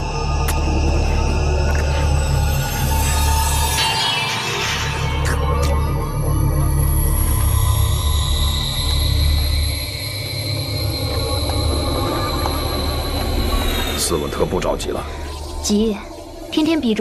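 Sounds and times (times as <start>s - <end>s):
suspenseful drone score: 0.0s - 17.0s.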